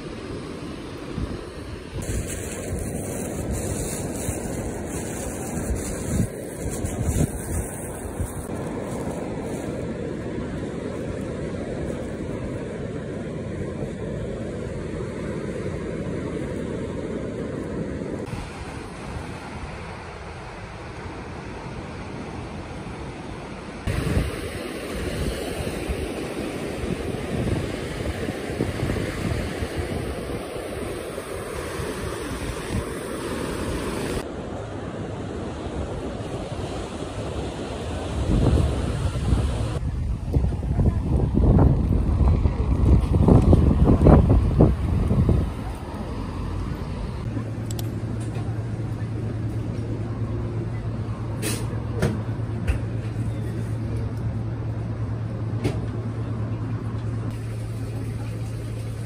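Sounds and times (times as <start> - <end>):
surf breaking on beach: 0.0 - 17.6, 23.8 - 39.8
wind buffeting microphone: 1.0 - 14.8, 23.8 - 34.2, 35.8 - 47.3.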